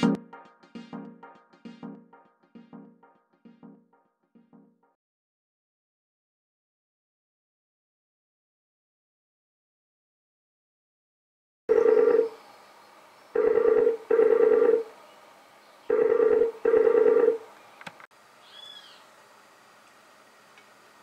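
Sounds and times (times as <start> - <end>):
faint high chirp: 18.4 - 19.0
toucan harsh calls: 18.4 - 19.1.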